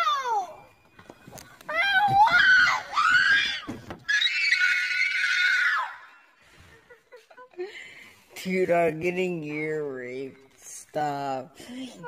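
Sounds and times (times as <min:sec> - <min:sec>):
child screaming: 0:00.0 - 0:00.6, 0:01.7 - 0:06.1.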